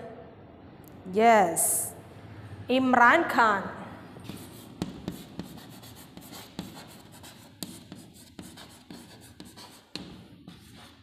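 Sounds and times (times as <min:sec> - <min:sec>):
chalk scratching on chalkboard: 0:04.2 - 0:11.0.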